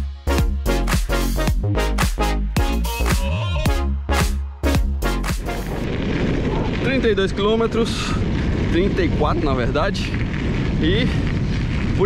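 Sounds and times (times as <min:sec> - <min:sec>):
background music with a beat: 0:00.0 - 0:05.8
wind buffeting microphone: 0:05.7 - 0:12.0.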